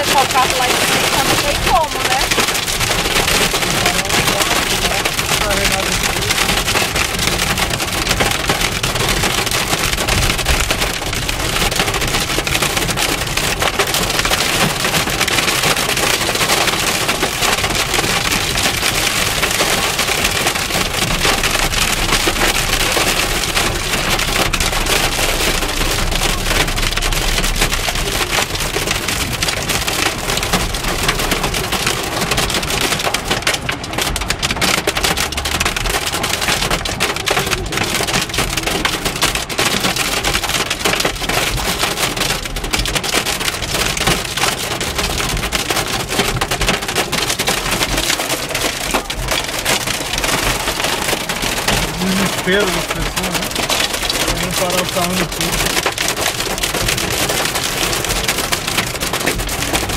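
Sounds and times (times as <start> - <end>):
hail clattering on car roof: 0.0 - 59.9
rain hiss: 49.3 - 59.9.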